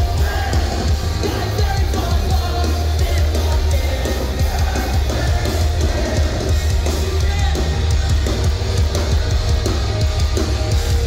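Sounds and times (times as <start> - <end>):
live pop-punk band: 0.0 - 11.0.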